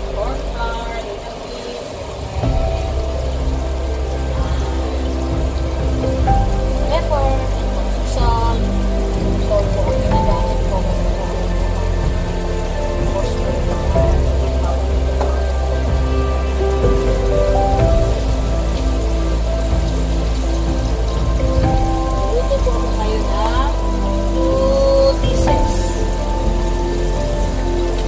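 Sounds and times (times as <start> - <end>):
slow melodic background music: 0.0 - 28.0.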